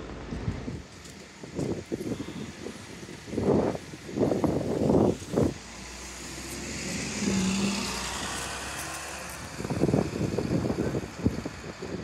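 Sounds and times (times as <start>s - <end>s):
bus engine passing: 0.0s - 12.0s.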